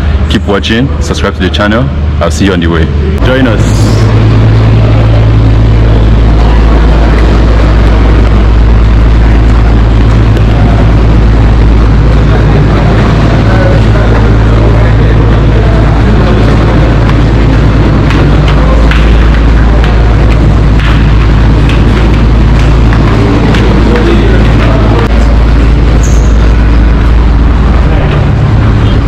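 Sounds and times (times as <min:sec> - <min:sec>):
droning hum: 0:00.0 - 0:29.0
loud low rumble: 0:00.0 - 0:29.0.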